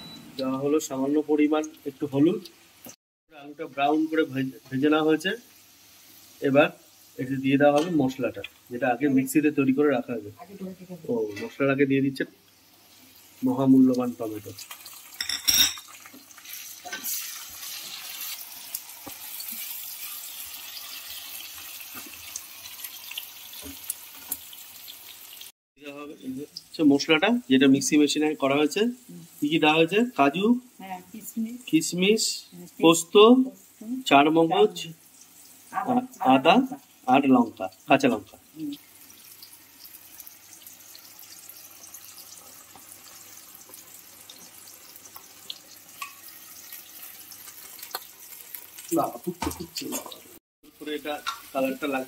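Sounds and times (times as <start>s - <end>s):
vegetables sizzling in hot oil: 0.4s - 52.0s.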